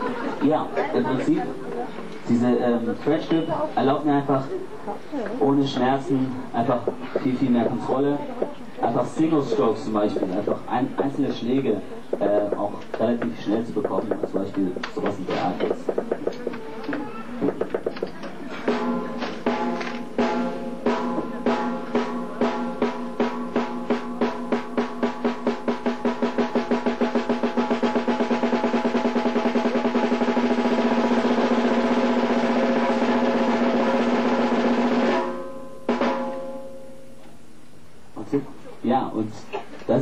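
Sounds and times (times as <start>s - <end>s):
drum single-stroke roll: 17.4s - 36.5s.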